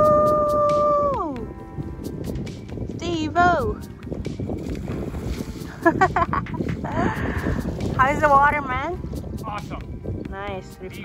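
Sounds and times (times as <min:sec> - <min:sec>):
person whooping: 0:00.0 - 0:01.4
background music with steady beat: 0:00.0 - 0:11.0.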